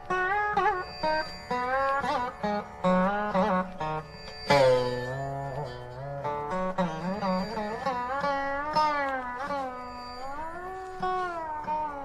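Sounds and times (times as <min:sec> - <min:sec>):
veena note bending in pitch: 0:00.0 - 0:12.0.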